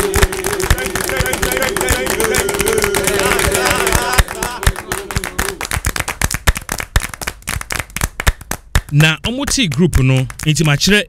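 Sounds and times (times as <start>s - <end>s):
rapid sharp claps or knocks: 0.0s - 11.0s.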